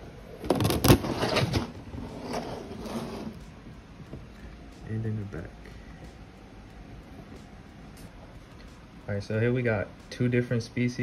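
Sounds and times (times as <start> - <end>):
glass doors scraping along track: 1.0 - 3.4.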